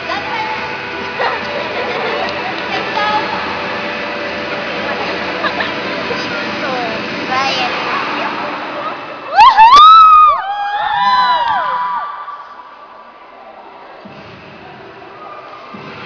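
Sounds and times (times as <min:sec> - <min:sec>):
echoing chatter and murmur: 0:00.0 - 0:16.0
spectators shouting: 0:09.3 - 0:13.8.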